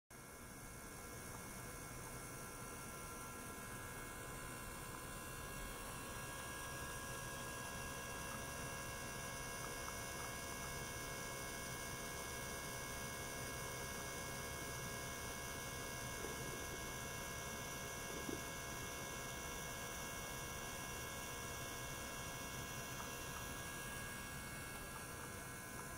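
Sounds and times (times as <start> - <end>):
electrical hum of equipment: 0.1 - 25.9.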